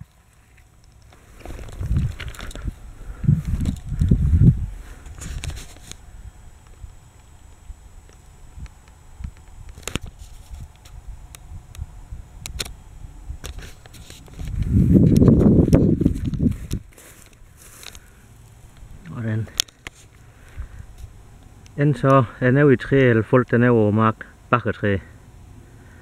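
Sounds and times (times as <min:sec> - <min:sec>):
wind buffeting microphone: 0:01.4 - 0:07.0, 0:14.3 - 0:17.0.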